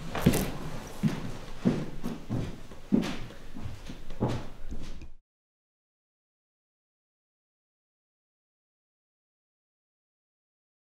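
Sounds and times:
footsteps on hard floor: 0.0s - 5.2s.

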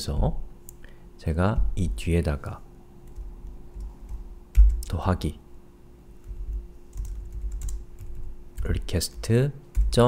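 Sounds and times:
keyboard typing: 3.0s - 4.9s, 6.2s - 10.0s.

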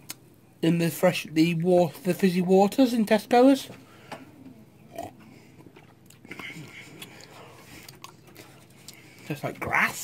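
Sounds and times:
sipping and swallowing drink: 4.9s - 9.2s.

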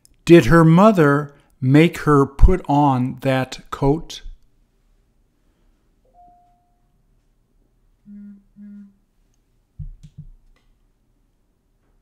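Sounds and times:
faint tone: 6.0s - 7.1s, 8.0s - 9.1s
person humming: 8.1s - 9.0s.

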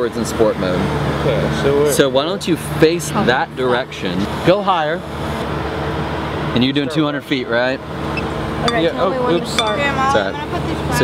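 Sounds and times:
voices talking: 0.0s - 5.4s, 6.3s - 11.0s
steady low hum: 0.6s - 11.0s.

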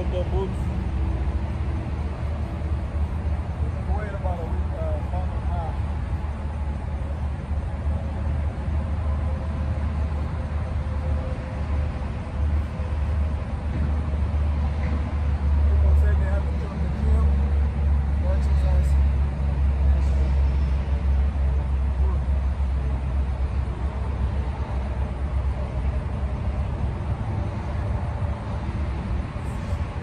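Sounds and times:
highway traffic rumble: 0.0s - 30.0s.

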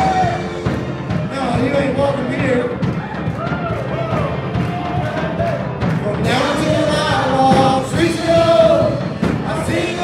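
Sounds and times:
worship band music: 0.0s - 10.0s
person singing: 6.0s - 10.0s.

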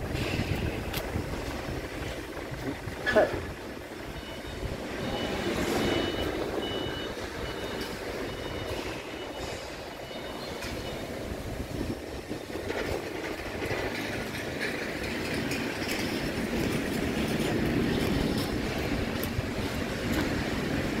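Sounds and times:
outdoor rumble and hiss: 0.0s - 21.0s
faint high beep: 4.1s - 11.1s.

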